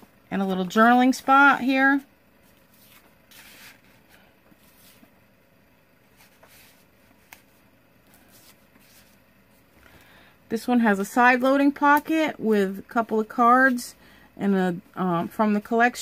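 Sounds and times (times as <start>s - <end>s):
paper pages rustling: 2.4s - 5.2s, 6.1s - 9.2s.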